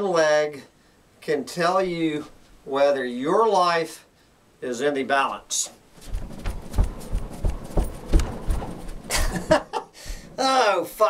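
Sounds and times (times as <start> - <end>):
bare foot thumping on carpet: 6.0 - 9.3, 10.0 - 10.4.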